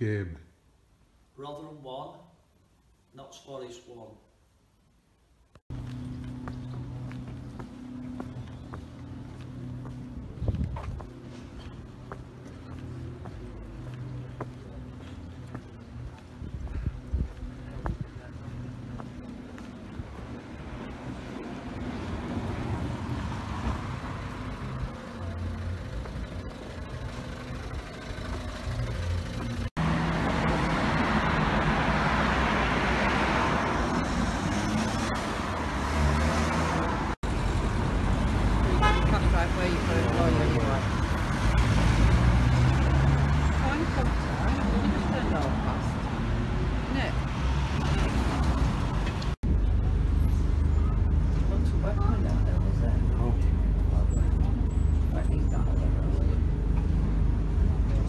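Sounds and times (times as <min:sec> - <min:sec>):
cars and vans passing: 0:05.6 - 0:58.0
bus engine running: 0:05.7 - 0:58.0.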